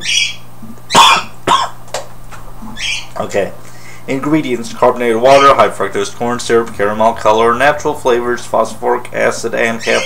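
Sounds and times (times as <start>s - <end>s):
man coughing: 1.0s - 1.8s.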